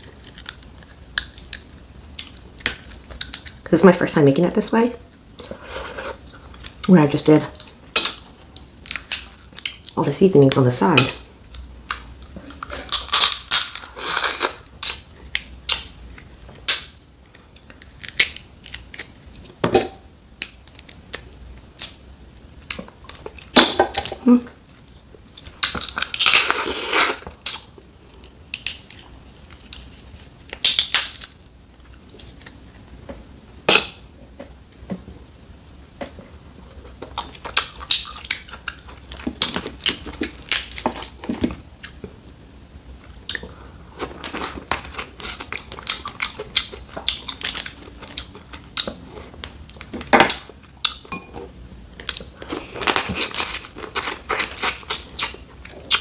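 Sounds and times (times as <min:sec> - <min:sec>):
crab shells cracking: 0:00.2 - 0:03.7, 0:07.6 - 0:11.2, 0:11.9 - 0:13.9, 0:17.6 - 0:22.0, 0:25.4 - 0:26.6, 0:28.5 - 0:29.9, 0:30.5 - 0:31.4, 0:36.9 - 0:42.0, 0:44.2 - 0:51.1.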